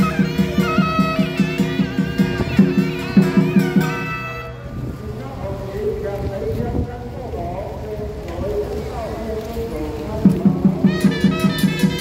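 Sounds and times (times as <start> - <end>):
fast percussion beat: 0.0 - 4.4, 10.2 - 12.0.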